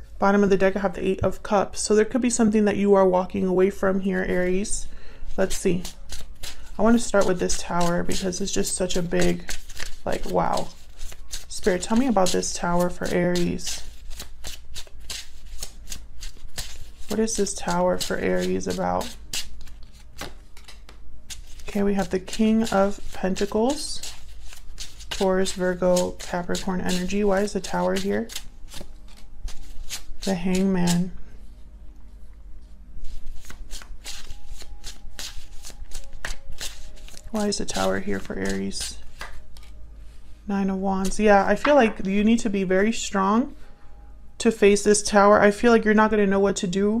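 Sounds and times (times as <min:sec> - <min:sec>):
cards being shuffled: 0:05.4 - 0:31.1, 0:33.0 - 0:39.8.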